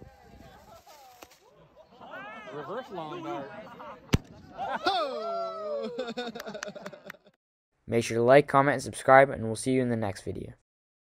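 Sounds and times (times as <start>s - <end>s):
people's voices outdoors: 0.0s - 7.3s
sharp pop: 4.1s - 4.3s.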